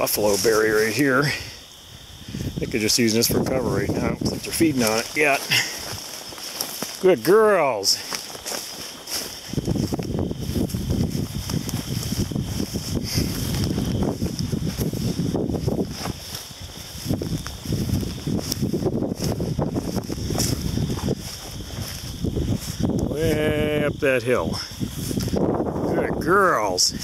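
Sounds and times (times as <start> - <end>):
footsteps rustling dry grass: 0.0 - 27.0
wind buffeting microphone: 0.0 - 27.0.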